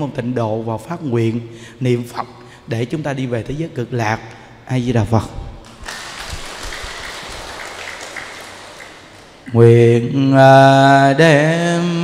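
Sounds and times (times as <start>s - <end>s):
audience applauding: 5.6s - 9.5s.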